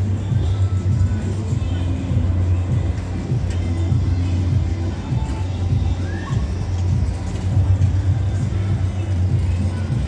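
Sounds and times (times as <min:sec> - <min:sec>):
bass-heavy music: 0:00.0 - 0:10.0
thrill ride rumble: 0:00.0 - 0:10.0.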